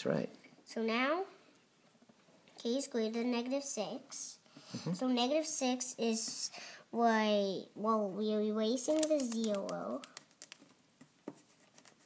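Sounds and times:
pencil tapping: 8.9 - 12.0
pencil scratching on paper: 11.3 - 12.0.

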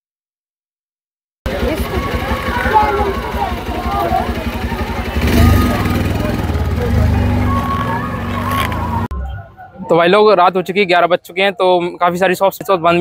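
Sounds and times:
indistinct voices: 1.5 - 10.1.

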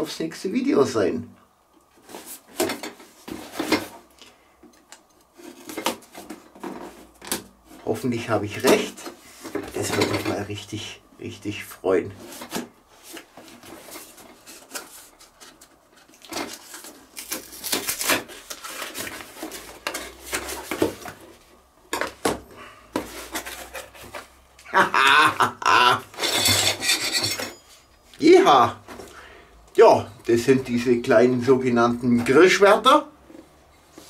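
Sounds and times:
cardboard rustling and scraping: 1.9 - 4.1, 5.3 - 10.6, 12.1 - 21.6, 22.9 - 24.5.

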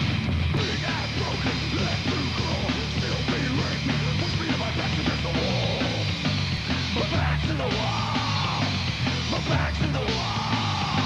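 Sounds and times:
heavy metal band playing: 0.0 - 11.0
person yelling vocals: 9.5 - 11.0.

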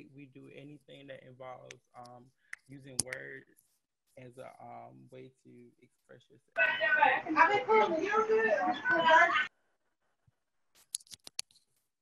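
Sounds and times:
sharp clicks: 1.7 - 3.3.

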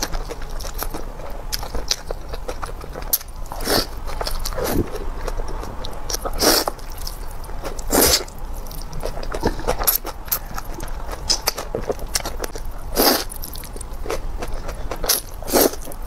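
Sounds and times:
wet chewing clicks: 0.0 - 16.0.

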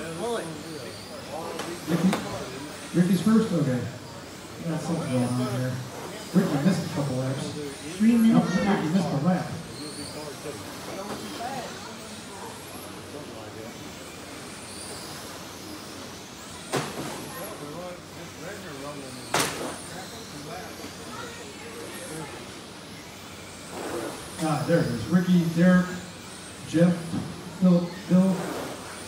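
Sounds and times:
toy car motors whining: 0.0 - 29.0.

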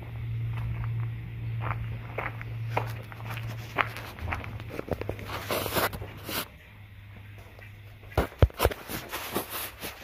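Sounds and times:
footsteps crunching on gravel: 0.0 - 6.7
steady low hum: 0.0 - 10.0.

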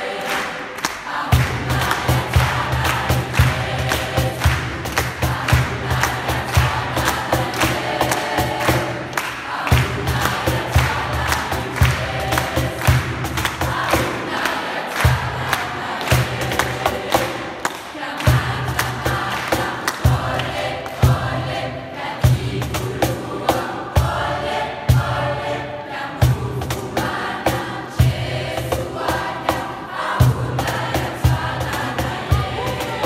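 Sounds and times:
choir singing: 0.0 - 33.0
cajon beat: 1.1 - 21.6, 26.3 - 33.0.

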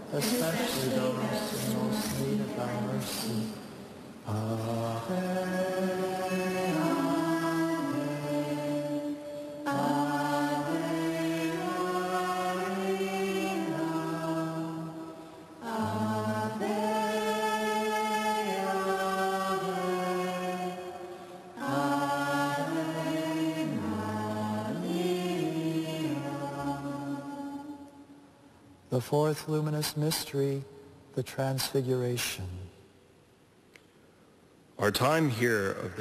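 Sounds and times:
voices singing a slow chant: 0.0 - 30.6.

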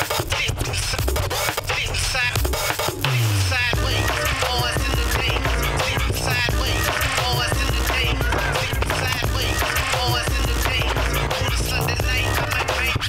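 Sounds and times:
hip hop beat with heavy bass: 0.0 - 13.0
records scratched on turntables: 0.0 - 13.0.

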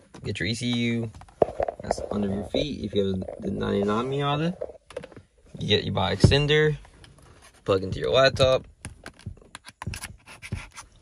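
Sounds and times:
laptop handling: 8.8 - 11.0.

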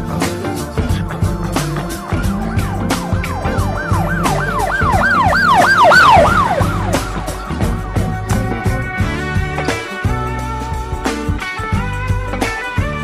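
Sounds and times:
music with steady beat: 0.0 - 13.0
siren-like wails: 2.3 - 8.3.

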